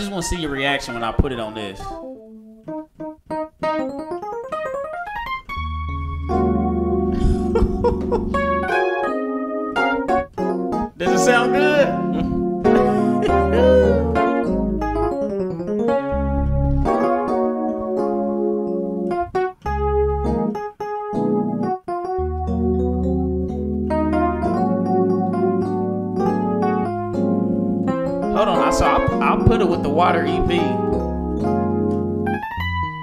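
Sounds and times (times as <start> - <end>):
electric piano playing: 0.0 - 33.0
low bass notes: 5.6 - 20.6, 21.2 - 33.0.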